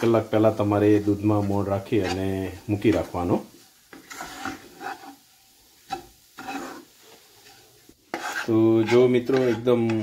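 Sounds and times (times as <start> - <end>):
wooden spatula scraping a pan: 0.0 - 10.0.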